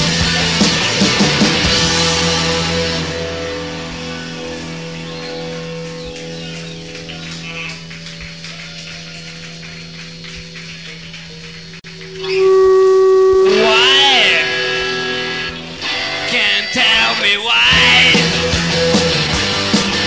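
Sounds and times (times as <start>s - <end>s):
rock band playing: 0.0s - 10.8s, 11.9s - 20.0s
electric guitar chord ringing: 0.0s - 20.0s
loud sustained guitar note: 1.6s - 8.6s, 11.9s - 17.2s.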